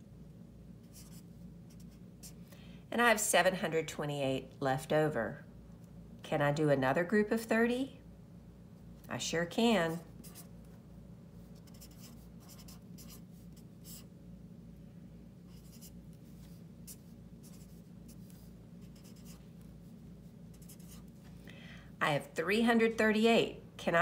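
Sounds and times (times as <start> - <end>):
low steady hum: 0.0 - 24.0
marker scratching on paper: 0.8 - 2.4, 10.2 - 10.5, 11.6 - 14.1, 15.5 - 19.7, 20.5 - 21.2.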